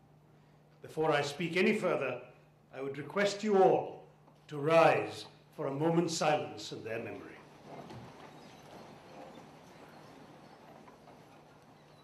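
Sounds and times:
low electrical hum: 0:00.0 - 0:12.0
audience shuffling: 0:04.8 - 0:12.0.

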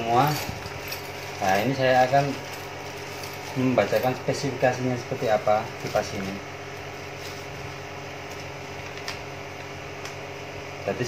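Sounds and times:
background hum with hiss: 0:00.0 - 0:11.0.

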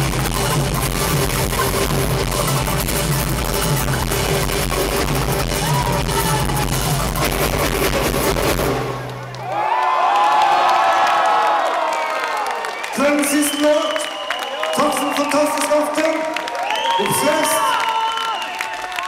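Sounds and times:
crowd cheering and whistling: 0:05.4 - 0:07.5, 0:08.7 - 0:19.0.

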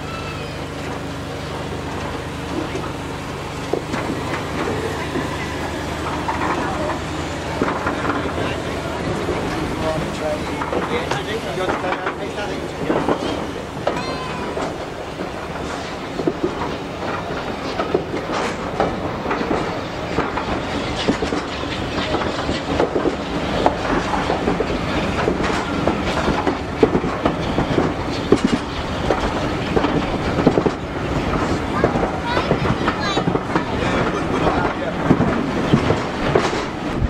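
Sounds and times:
train wheels clicking over rail joints: 0:00.0 - 0:37.0.

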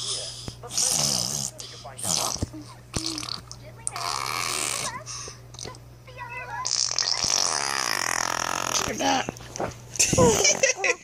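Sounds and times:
baby blowing a raspberry: 0:00.7 - 0:04.9, 0:06.6 - 0:09.2.

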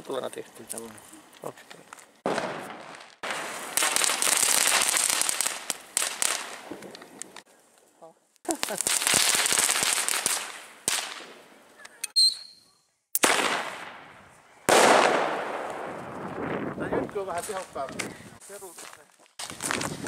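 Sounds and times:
fireworks crackling: 0:00.0 - 0:12.1, 0:13.2 - 0:20.0.

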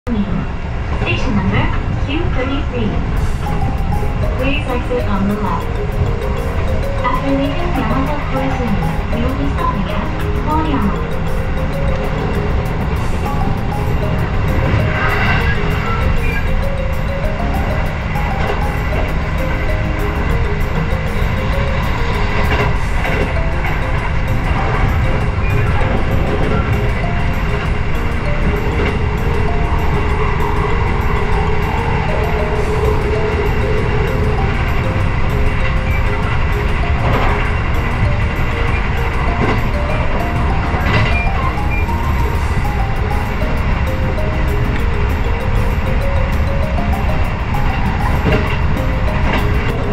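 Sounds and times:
train rumbling inside carriage: 0:00.0 - 0:49.9
soft background music: 0:02.0 - 0:49.9.

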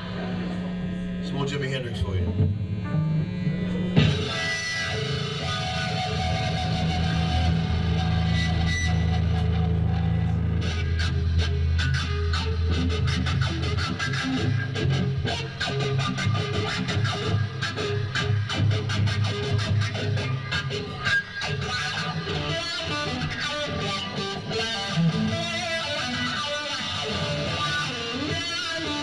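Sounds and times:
low bass notes: 0:00.0 - 0:20.8
electric guitar riffing: 0:00.0 - 0:29.0
live rock band playing: 0:02.4 - 0:29.0.

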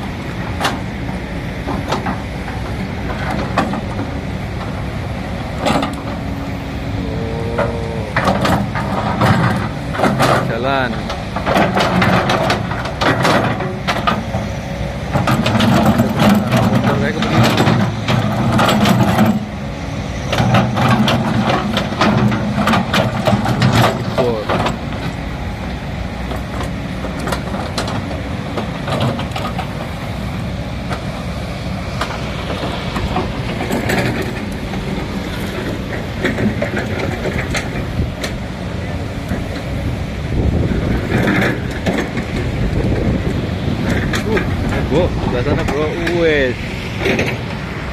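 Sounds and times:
excavator diesel engine: 0:00.0 - 0:47.9.

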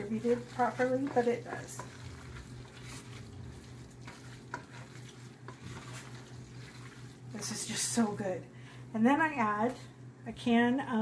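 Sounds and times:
spoon scraping sticky food in pot: 0:00.0 - 0:07.7
steady low hum: 0:00.0 - 0:11.0.

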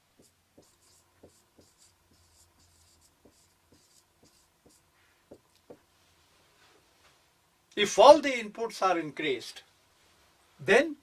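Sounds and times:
marker writing on a whiteboard: 0:00.0 - 0:05.9.

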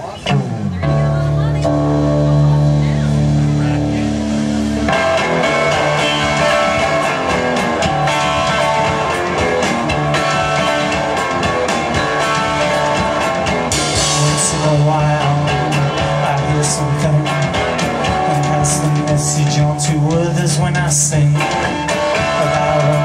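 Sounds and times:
rock drum beat: 0:00.0 - 0:23.0
guitar chord ringing: 0:00.3 - 0:20.4.

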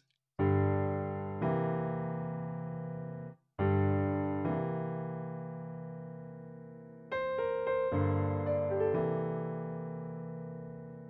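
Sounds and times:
piano chord: 0:00.4 - 0:11.0.

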